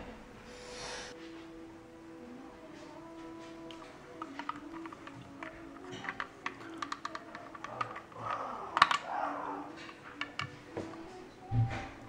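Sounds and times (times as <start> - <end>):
hard plastic clicking and tapping: 3.7 - 9.1, 9.7 - 11.9.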